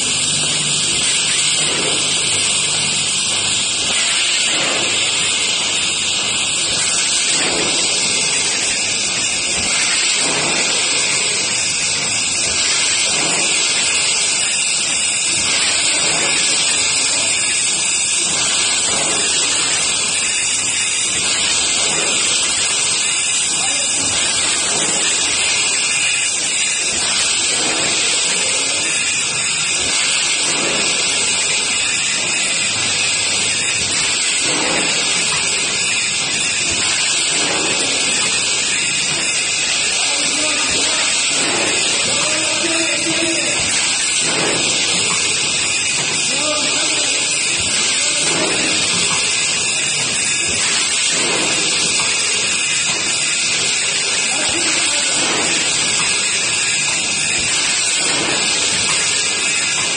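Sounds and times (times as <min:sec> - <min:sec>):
granules rattling on vibrating tray: 0:00.0 - 0:59.9.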